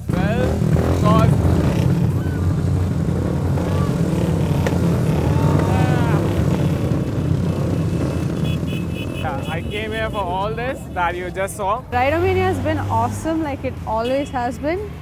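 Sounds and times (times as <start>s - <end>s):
motorcycle engines rumbling: 0.0s - 15.0s.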